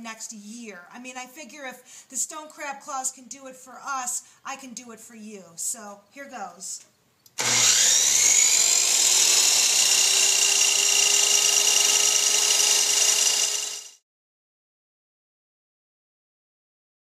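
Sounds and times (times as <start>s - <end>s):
electric miter saw whine: 7.4s - 14.0s.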